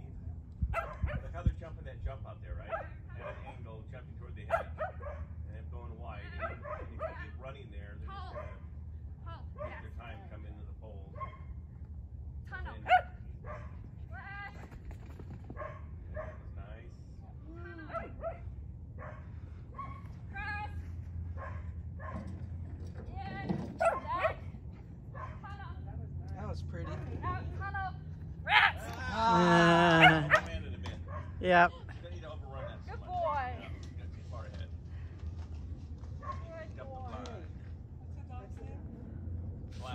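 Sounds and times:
dog barking and yipping: 0.7 - 1.2, 2.7 - 3.6, 4.5 - 5.3, 6.4 - 7.2, 11.2 - 11.5, 12.9 - 13.8, 15.5 - 16.4, 17.9 - 20.1, 21.4 - 22.4, 23.7 - 24.5, 25.1 - 25.6, 29.9 - 31.4.

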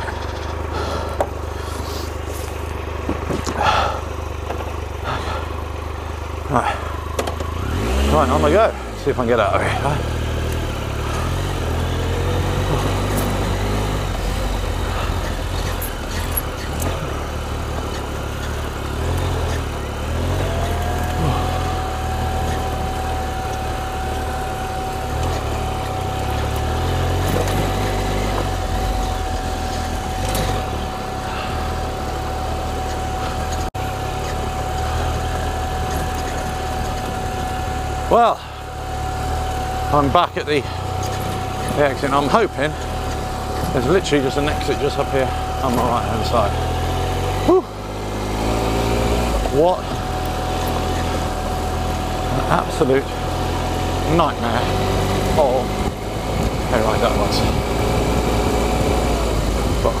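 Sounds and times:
motorcycle engine low throttle: 0.0 - 60.0
thin steady whine: 0.0 - 60.0.

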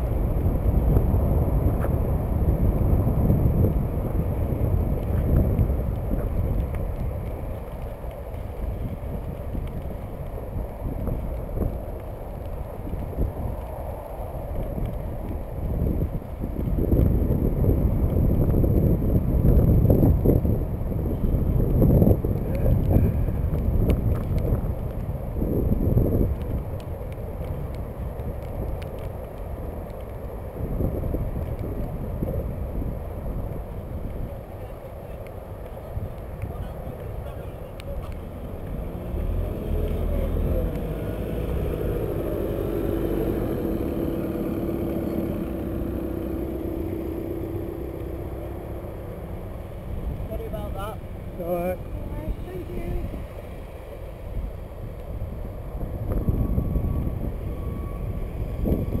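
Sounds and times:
engine hum: 0.0 - 59.0
wind buffeting microphone: 0.0 - 59.0.

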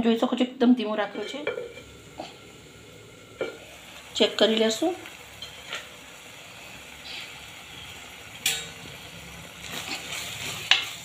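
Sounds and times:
food sizzling in a pot: 0.8 - 11.0.

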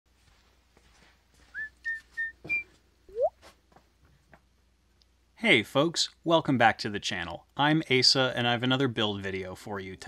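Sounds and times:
whistled notes: 1.5 - 3.3.

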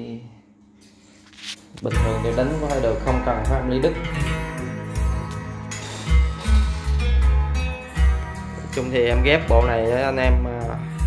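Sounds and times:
deep bass notes: 1.9 - 11.0.

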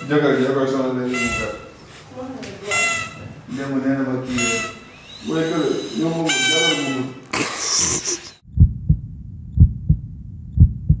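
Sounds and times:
heartbeat thumps: 8.4 - 11.0.

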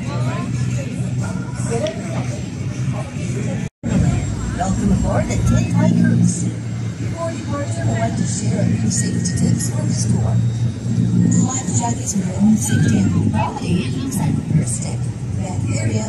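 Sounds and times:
people chatting: 0.0 - 10.5, 11.2 - 16.0
boat engines droning: 0.0 - 16.0.

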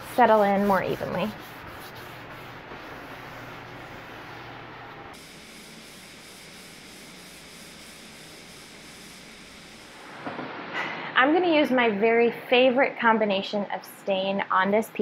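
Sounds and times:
paper towel rubbing on wood: 0.0 - 5.0.

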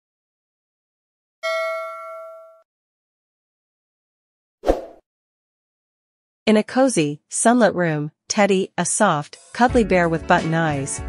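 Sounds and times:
bell-like ding: 1.4 - 2.7.

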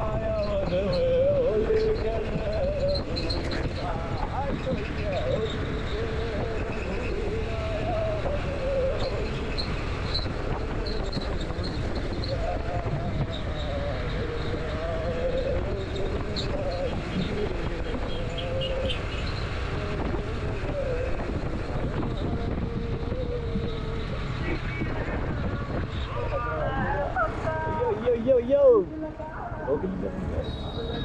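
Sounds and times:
wind noise on microphone: 0.0 - 31.0.

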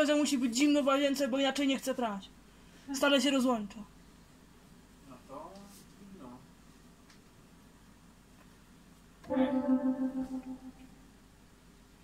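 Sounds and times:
synthesizer note: 9.3 - 11.0.

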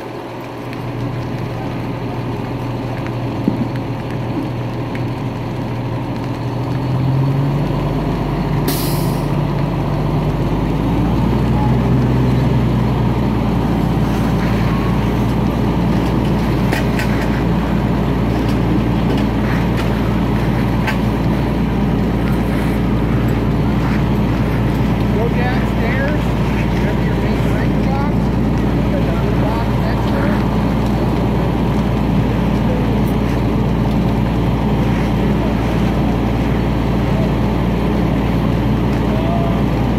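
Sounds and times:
diesel engine running: 0.0 - 39.9
short hiss: 8.7 - 9.3.

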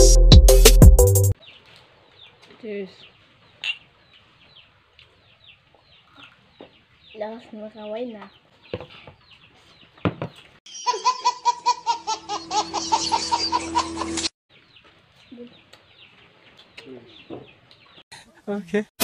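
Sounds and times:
baby giggling: 10.8 - 14.3.

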